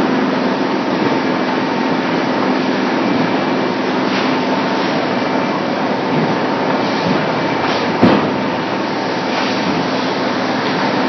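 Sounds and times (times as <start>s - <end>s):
production line machinery running: 0.0s - 11.0s.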